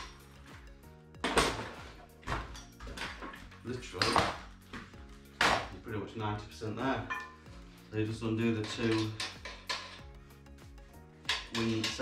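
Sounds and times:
soft background music: 0.0s - 12.0s
metal frame knocks and rattles: 1.2s - 5.8s, 8.5s - 10.1s.

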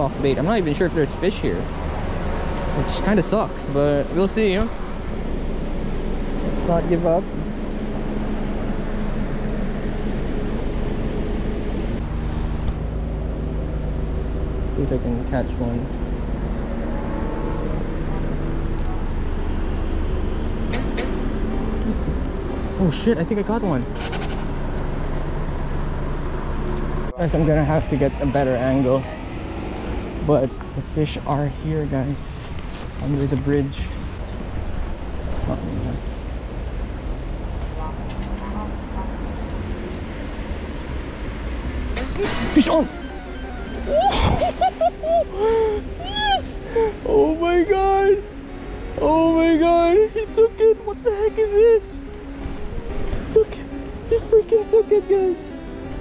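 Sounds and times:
road traffic rumble: 0.0s - 56.0s.

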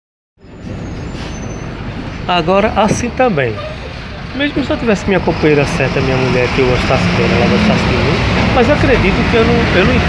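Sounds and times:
bus engine and road rumble: 0.4s - 10.0s.

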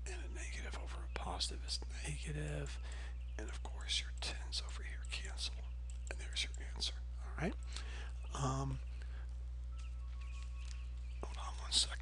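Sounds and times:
man whispering: 0.0s - 9.0s, 11.1s - 12.0s
low electrical hum: 0.0s - 12.0s.

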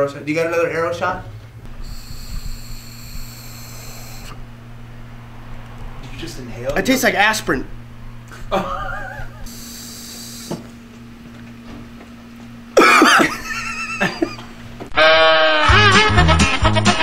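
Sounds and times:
low steady hum: 0.0s - 14.9s
man crying out in disgust: 12.8s - 13.4s.

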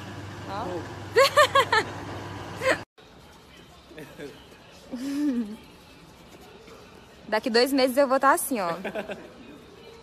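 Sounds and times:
woman laughing: 1.2s - 2.0s, 2.6s - 2.9s, 4.9s - 5.7s, 8.6s - 9.6s.

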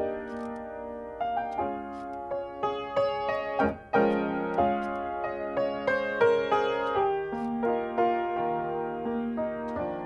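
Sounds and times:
grand piano melody: 0.0s - 10.0s.

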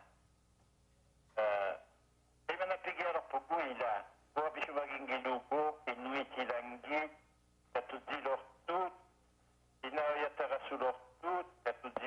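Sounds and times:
person speaking over telephone: 1.4s - 1.9s, 2.5s - 9.1s, 9.8s - 12.0s.

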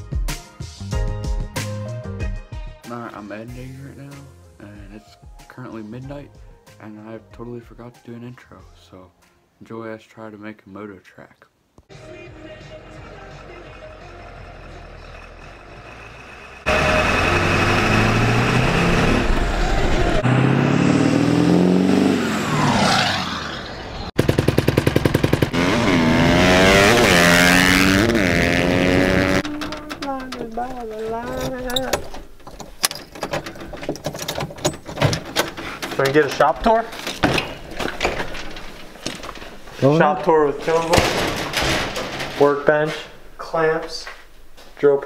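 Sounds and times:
truck engine revving: 12.6s - 32.0s
person talking: 29.4s - 32.1s.

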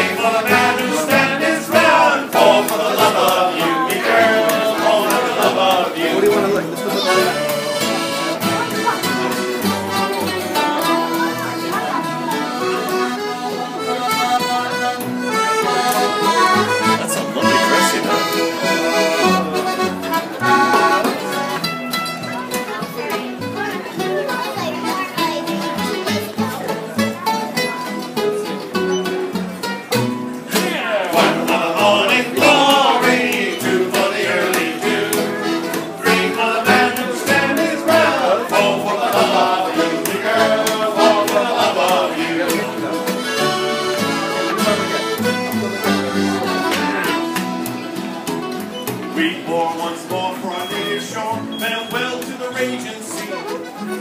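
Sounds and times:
accordion: 0.0s - 54.0s
mandolin: 0.0s - 54.0s
plucked upright bass: 0.0s - 54.0s
strummed acoustic guitar: 0.0s - 54.0s.

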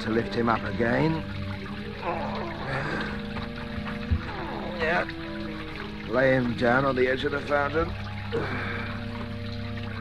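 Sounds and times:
fountain water splashing: 0.0s - 10.0s
low held music chord: 0.0s - 10.0s.

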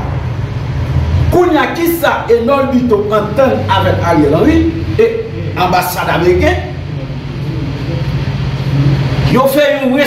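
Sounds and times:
man speaking: 1.3s - 10.0s.

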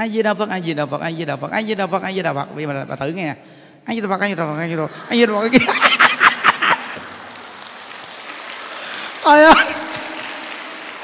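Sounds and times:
audience clapping: 5.1s - 11.0s.

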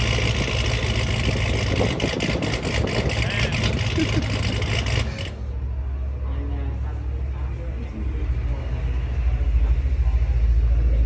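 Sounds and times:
engine idling low rumble: 0.0s - 11.0s.

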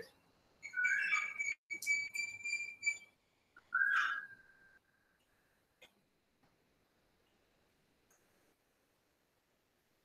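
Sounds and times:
high whistled notes: 0.6s - 4.8s.

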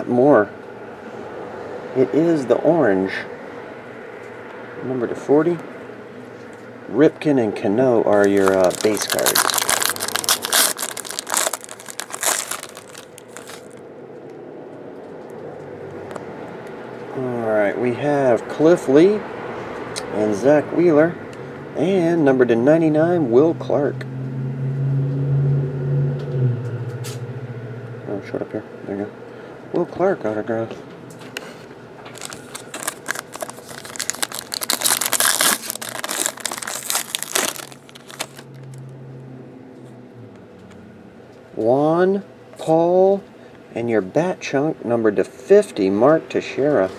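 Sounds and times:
foil wrapper crinkling: 8.2s - 13.8s, 32.1s - 38.8s.

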